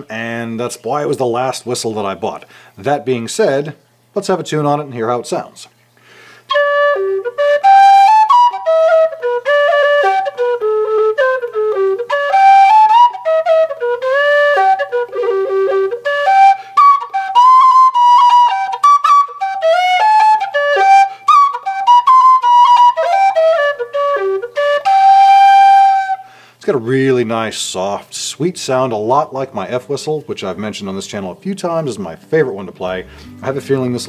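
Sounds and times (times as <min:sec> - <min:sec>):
low whistle melody: 0:06.5 - 0:26.3.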